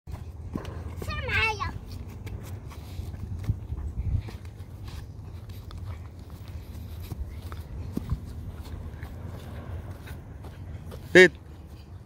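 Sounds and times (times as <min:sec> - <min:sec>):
steady low rumble: 0:00.1 - 0:12.0.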